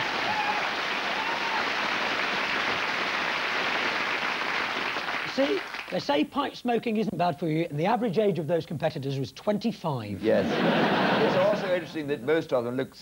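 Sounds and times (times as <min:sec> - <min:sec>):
audience applauding: 0:00.0 - 0:06.0
person speaking: 0:11.2 - 0:13.0.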